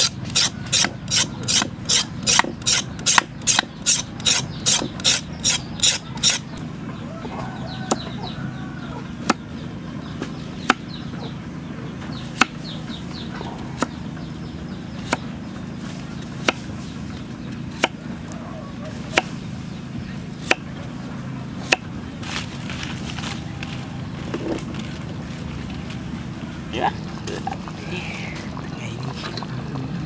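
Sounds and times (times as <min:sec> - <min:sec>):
bird calls: 0:00.0 - 0:21.8
steady low hum: 0:00.0 - 0:30.0
knife chopping carrot on wood: 0:09.2 - 0:09.4, 0:12.4 - 0:12.6, 0:15.0 - 0:15.3, 0:17.8 - 0:18.0, 0:20.4 - 0:20.7, 0:21.6 - 0:21.9.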